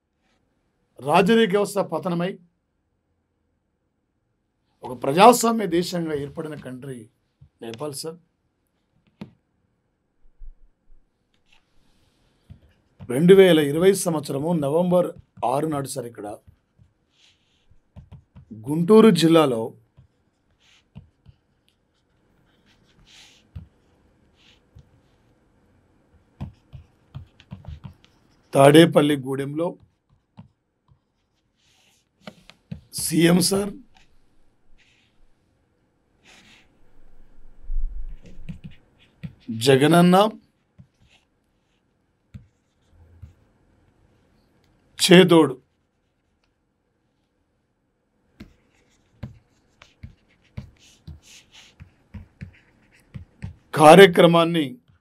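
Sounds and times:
pen scratching paper: 16.4s - 18.5s, 20.0s - 25.4s, 26.4s - 28.5s, 38.1s - 39.5s, 40.6s - 43.4s, 48.4s - 53.7s.

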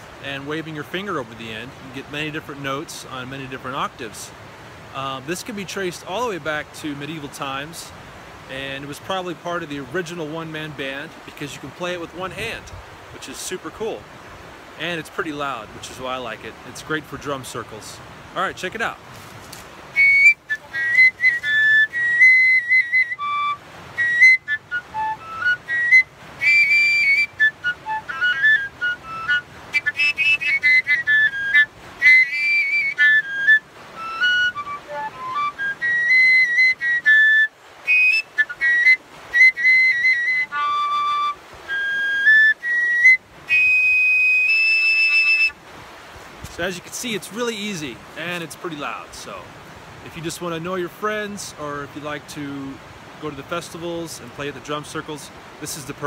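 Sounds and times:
overtone whistle notes: 20.0s - 45.5s.

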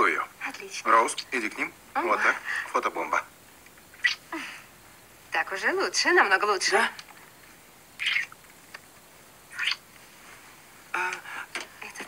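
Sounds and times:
smacking kiss sounds: 4.0s - 4.2s, 8.0s - 8.9s, 9.6s - 9.8s.

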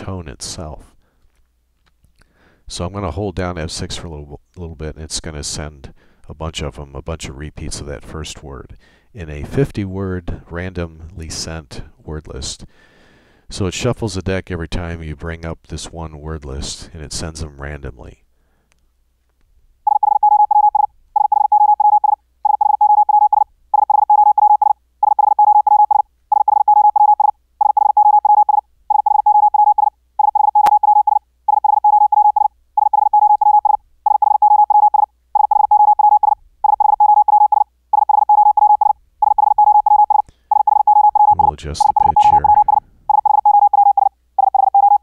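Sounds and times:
morse code tone: 19.9s - 45.0s.

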